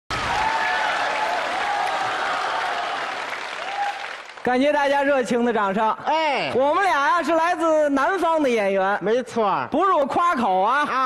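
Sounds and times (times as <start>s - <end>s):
audience applauding: 0.1s - 4.5s.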